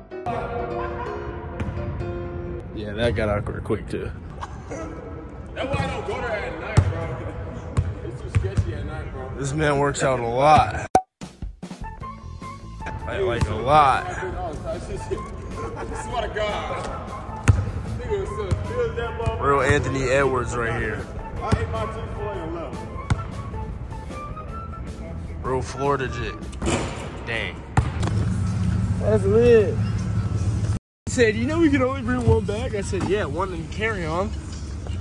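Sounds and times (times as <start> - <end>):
music playing: 11.6 - 35.0.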